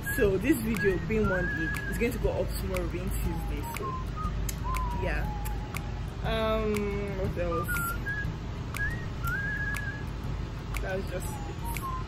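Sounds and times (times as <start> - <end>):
person whistling short notes: 0.0 - 6.0, 7.4 - 10.1, 11.2 - 12.0.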